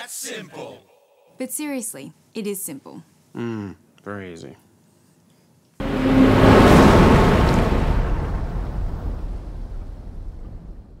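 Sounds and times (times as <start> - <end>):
loud rushing rumbling noise: 5.8 - 11.0.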